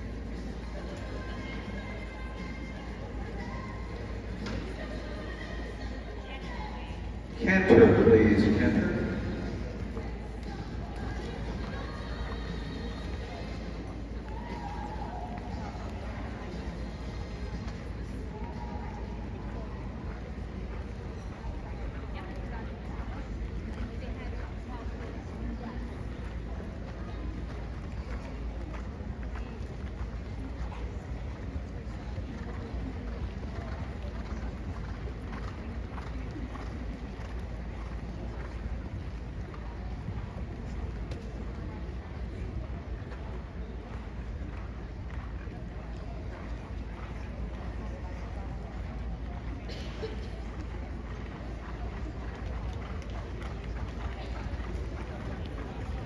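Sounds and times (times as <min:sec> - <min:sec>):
faint background music: 0:00.0 - 0:56.0
announcer's voice echoing: 0:07.4 - 0:09.6.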